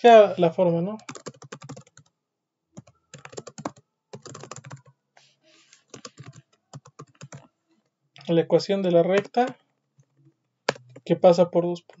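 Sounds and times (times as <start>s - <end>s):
keyboard typing: 1.0s - 2.1s, 2.8s - 5.0s, 5.8s - 7.5s, 9.1s - 11.1s.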